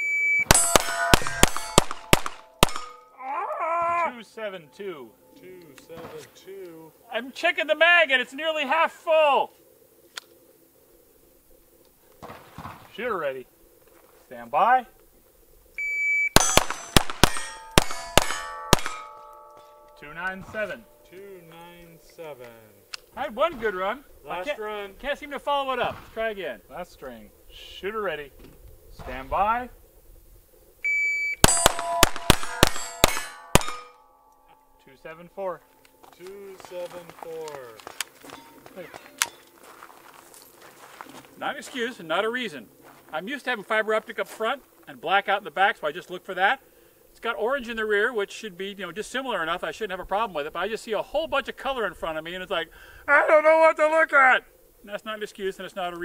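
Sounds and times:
steel targets ringing: 0.4s - 3.2s, 16.3s - 22.3s, 31.4s - 36.8s
pistol shots: 0.5s - 3.0s, 16.4s - 19.5s, 31.4s - 34.0s.

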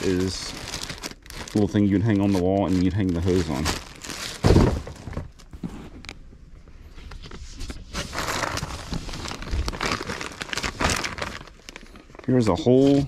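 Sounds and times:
plastic packaging crinkling: 0.0s - 6.2s, 7.9s - 13.0s.

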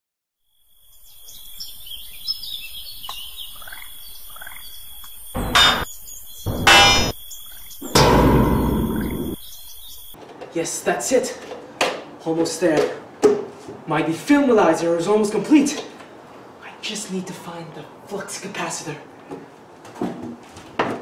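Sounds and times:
birds chirping: 0.9s - 10.2s.

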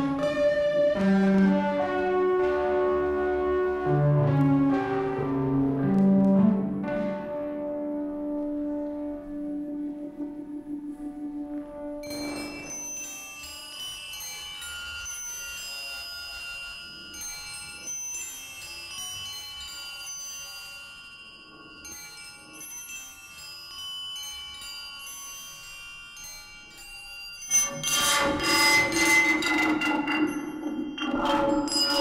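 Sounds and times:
ringing bell-like tones: 9.8s - 32.0s.

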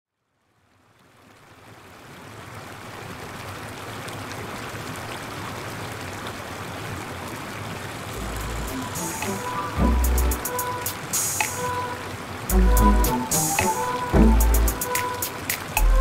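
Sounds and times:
running water: 2.3s - 16.0s.

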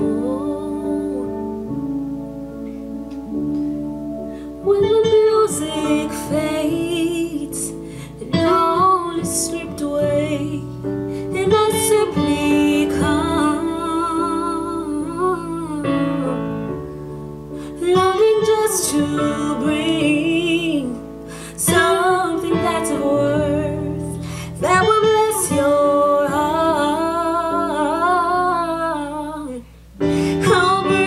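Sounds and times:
woman singing worship song: 0.0s - 1.8s, 4.5s - 16.8s, 17.6s - 31.0s.

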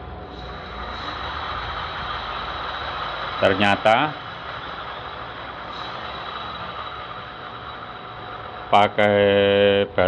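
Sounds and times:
electric motor hum and whine: 0.0s - 10.0s.

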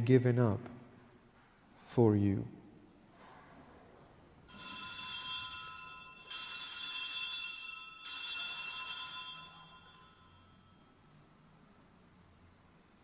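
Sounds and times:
altar bells ringing: 4.5s - 11.3s.

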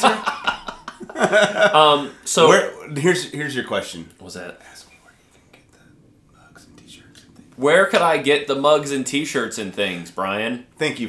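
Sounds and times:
man talking: 1.2s - 5.1s, 6.4s - 11.0s
man murmuring: 6.4s - 9.5s.

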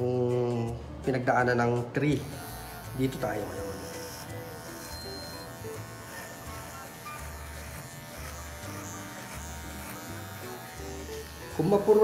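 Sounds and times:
electric hair clipper buzzing: 2.1s - 12.0s.

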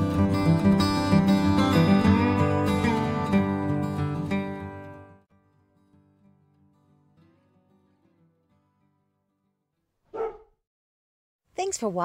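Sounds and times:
dog barking: 10.1s - 10.6s.

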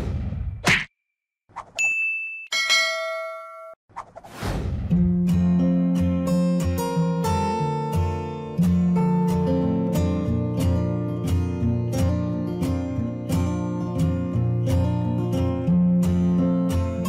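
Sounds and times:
ding: 1.8s - 3.8s
ringing bell chime: 1.8s - 3.8s
whoosh: 3.9s - 5.1s
strummed acoustic guitar music: 5.1s - 17.0s.

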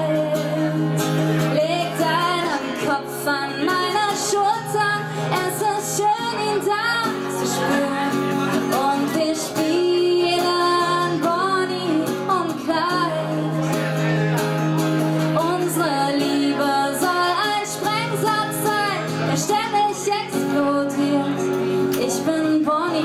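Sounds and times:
woman singing: 0.0s - 14.0s, 15.2s - 23.0s
strummed acoustic guitar: 0.0s - 23.0s.

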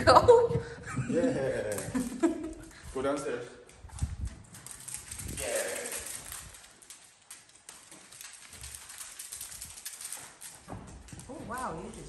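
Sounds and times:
dog claws clicking on wood floor: 1.5s - 12.0s.

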